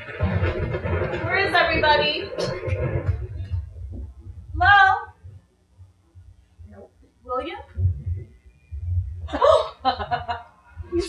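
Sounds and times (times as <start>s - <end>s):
woman speaking: 1.2s - 2.4s, 4.6s - 5.2s, 6.7s - 7.8s.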